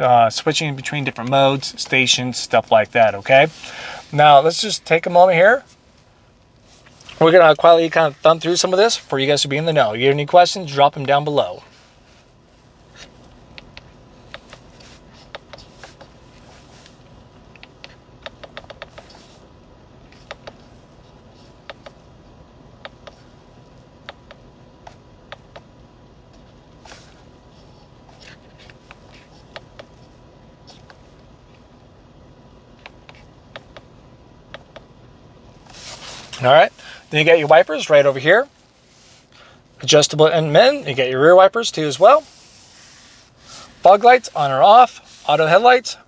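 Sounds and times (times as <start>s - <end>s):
faint steady hum: 0.0s - 46.0s.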